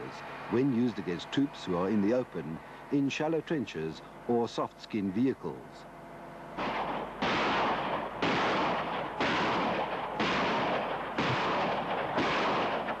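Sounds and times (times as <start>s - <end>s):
rocket launches rushing blasts: 6.6s - 13.0s.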